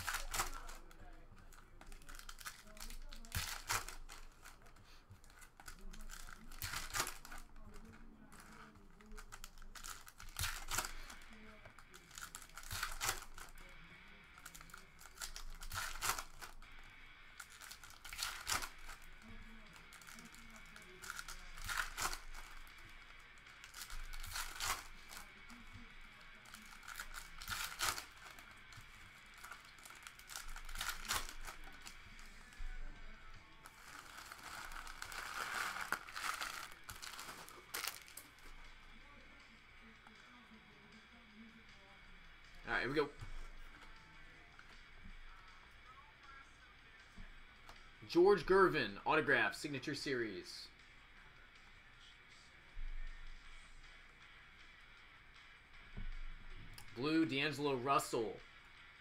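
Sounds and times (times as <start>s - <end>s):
sharp crackle of foil: 0.0s - 32.8s, 33.6s - 38.6s
foil wrappers crinkling: 0.0s - 38.6s.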